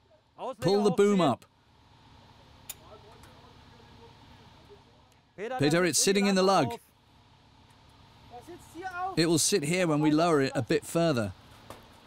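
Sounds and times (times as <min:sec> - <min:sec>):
man talking: 0:00.0 - 0:01.4, 0:05.4 - 0:06.8, 0:08.4 - 0:11.4.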